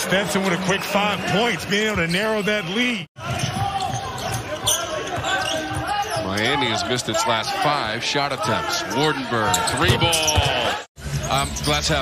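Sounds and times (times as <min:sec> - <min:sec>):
voices in arena: 0:00.0 - 0:12.0
sneaker squeak: 0:03.2 - 0:06.7, 0:09.5 - 0:12.0.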